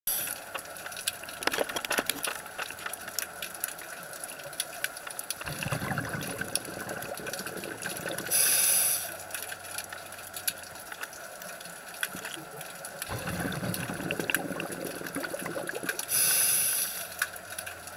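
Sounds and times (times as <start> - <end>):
scattered clicks and crackle: 0.1 - 17.9
bubbly exhale gurgle underwater: 5.4 - 9.3, 12.0 - 16.7
regulator inhalation hiss: 8.3 - 9.2, 16.1 - 17.1.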